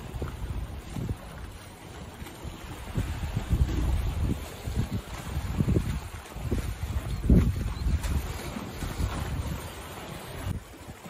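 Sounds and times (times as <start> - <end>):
sea washing against rocks: 0.0 - 11.0
wind buffeting microphone: 0.0 - 11.0.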